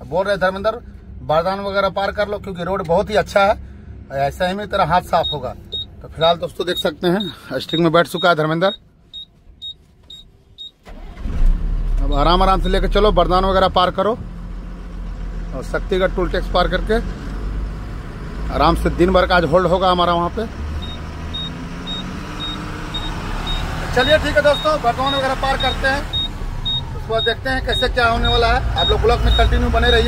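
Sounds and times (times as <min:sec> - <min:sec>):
truck diesel engine rumbling: 0:00.0 - 0:30.0
short high beeps: 0:05.2 - 0:05.9, 0:06.7 - 0:10.7, 0:20.8 - 0:27.9, 0:28.8 - 0:30.0.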